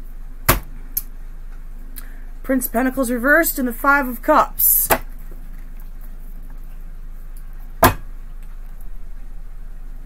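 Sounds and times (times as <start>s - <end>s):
low hum: 0.0s - 10.0s.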